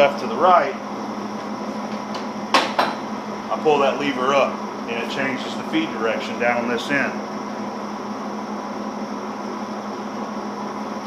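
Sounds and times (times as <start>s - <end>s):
lathe humming: 0.0s - 11.0s
sharp metallic clunks: 2.1s - 3.1s.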